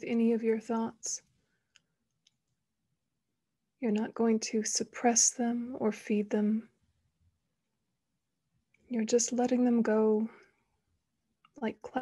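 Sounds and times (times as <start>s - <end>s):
woman speaking: 3.8s - 6.6s, 8.9s - 10.4s.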